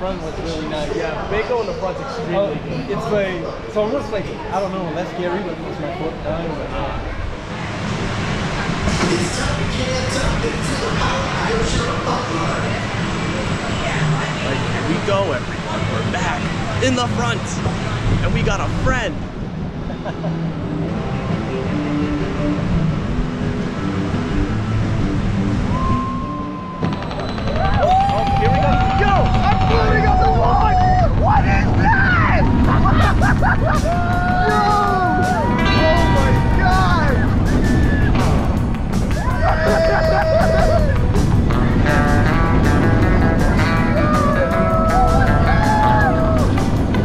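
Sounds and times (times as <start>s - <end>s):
train rumbling: 6.6s - 47.0s
riders yelling and whooping: 27.0s - 38.2s, 39.1s - 41.2s, 43.8s - 46.9s.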